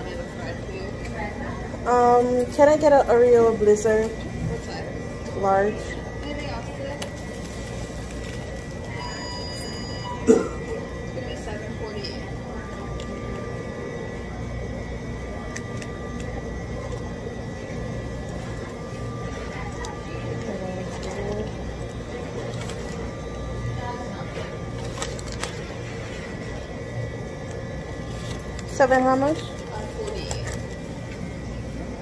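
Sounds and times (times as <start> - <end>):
low hum of equipment: 0.0 - 32.0.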